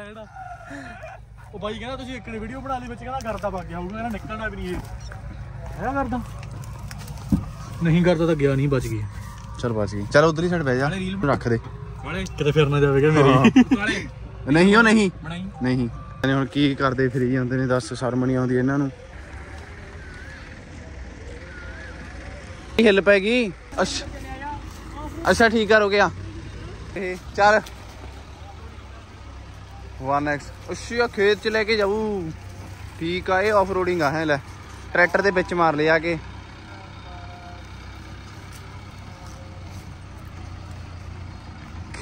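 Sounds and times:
tractor engines droning: 0:00.0 - 0:42.0
vehicle driving on dirt: 0:00.0 - 0:42.0.

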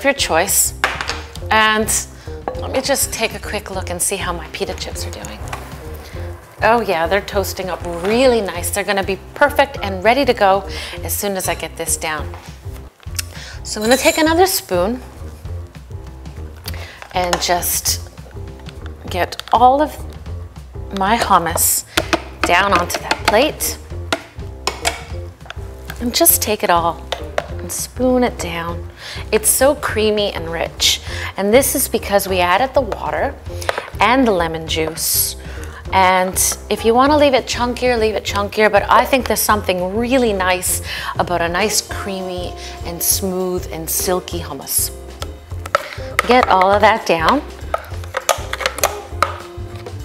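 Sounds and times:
background music: 0:00.0 - 0:50.0
spoon scraping plastic jar: 0:45.5 - 0:50.0.

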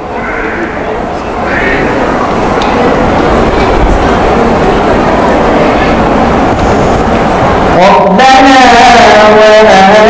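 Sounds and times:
faint voices: 0:00.0 - 0:10.0
loud steady rumbling: 0:00.0 - 0:10.0.

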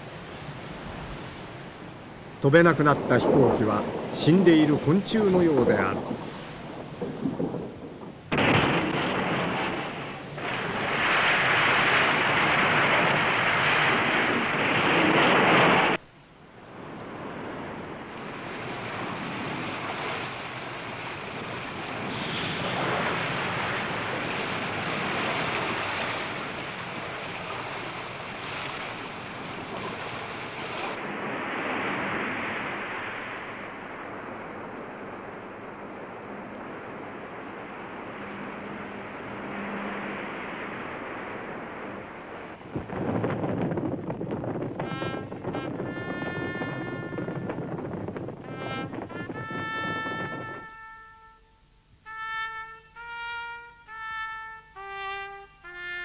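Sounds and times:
rushing wind: 0:00.0 - 0:51.0
waves: 0:00.0 - 0:56.0
musical score with sustained tones: 0:48.5 - 0:56.0.

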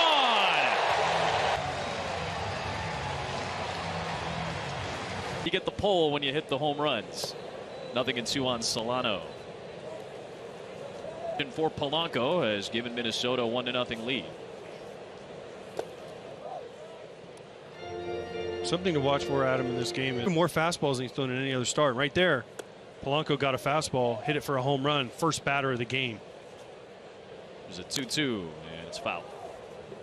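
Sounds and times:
crowd cheering: 0:00.0 - 0:05.5.

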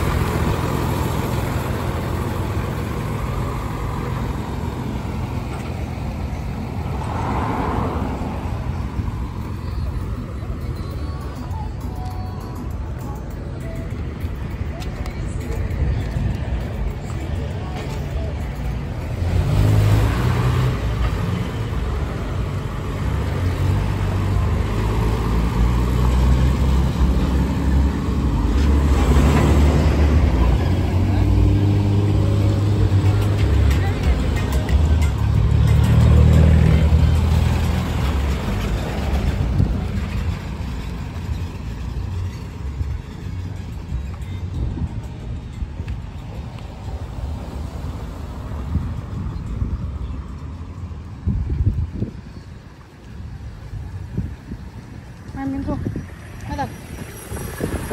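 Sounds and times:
large vehicles driving past: 0:00.0 - 0:57.9.

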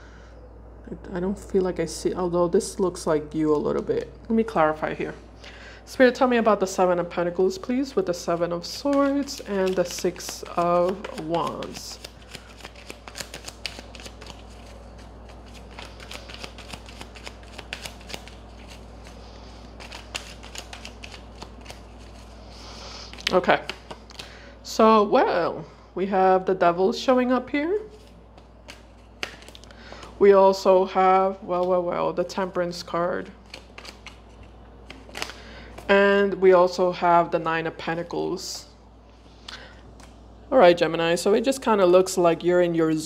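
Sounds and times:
cards being shuffled by hand: 0:07.8 - 0:24.3, 0:27.8 - 0:30.2, 0:33.2 - 0:35.9.

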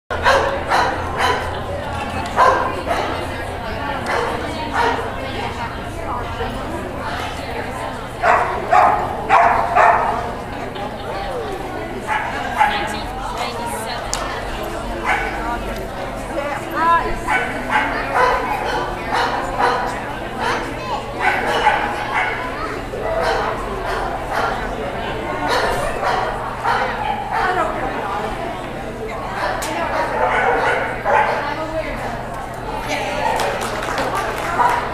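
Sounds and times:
dog barking: 0:00.1 - 0:01.6, 0:02.4 - 0:03.2, 0:04.0 - 0:05.0, 0:08.2 - 0:10.2, 0:15.0 - 0:15.4, 0:17.3 - 0:22.5, 0:23.2 - 0:24.6, 0:25.4 - 0:27.6, 0:30.0 - 0:31.4.

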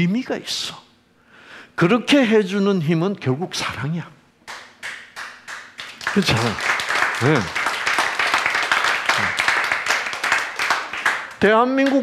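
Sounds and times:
audience clapping: 0:04.4 - 0:12.0.

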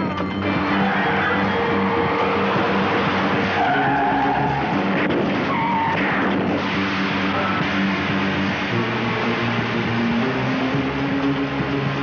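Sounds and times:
car engine running: 0:00.0 - 0:12.0
car tyres squealing: 0:00.2 - 0:12.0.

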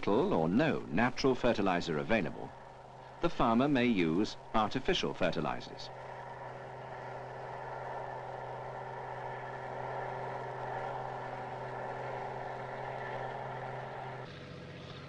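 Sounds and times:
tractor engine running: 0:00.0 - 0:15.0.

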